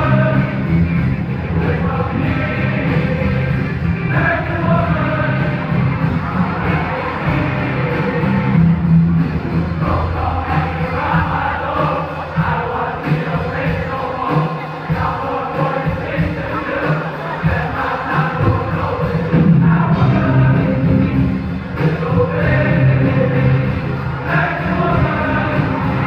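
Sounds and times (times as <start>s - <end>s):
men singing together: 0.0s - 8.7s, 9.7s - 26.0s
live band music: 0.0s - 26.0s.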